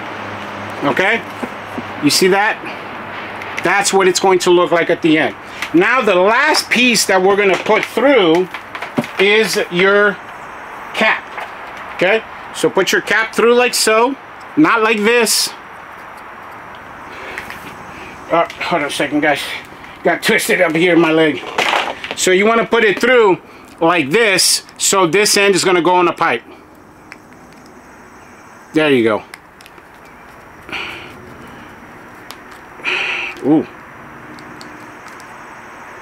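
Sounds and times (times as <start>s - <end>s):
background hiss: 0.0s - 36.0s
steady background hum: 0.0s - 36.0s
plastic tubing clicks and rubs: 29.3s - 32.7s.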